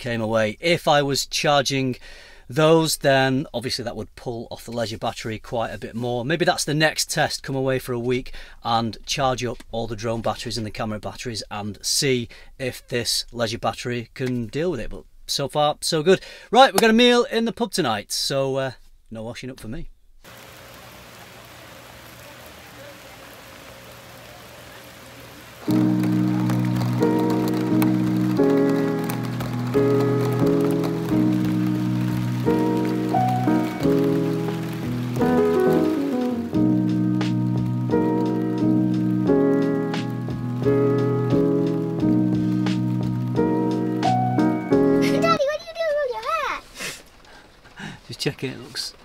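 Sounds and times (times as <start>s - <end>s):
steady rain: 20.3s - 49.0s
instrumental background music: 25.6s - 45.4s.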